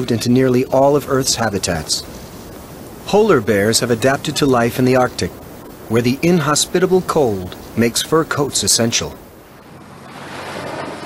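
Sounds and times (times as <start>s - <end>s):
ocean surf: 0.0s - 11.0s
wind: 0.0s - 11.0s.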